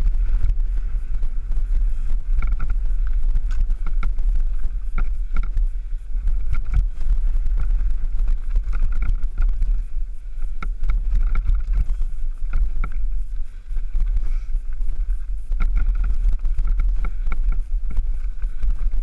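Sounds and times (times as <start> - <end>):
bike rattling over stones: 0.0 - 19.0
wind rumble on microphone: 0.0 - 19.0.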